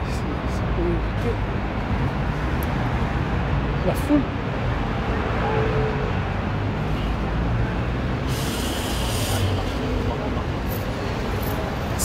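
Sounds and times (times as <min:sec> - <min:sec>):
bus running in traffic: 0:00.0 - 0:12.0
compressed air hiss: 0:08.2 - 0:09.8.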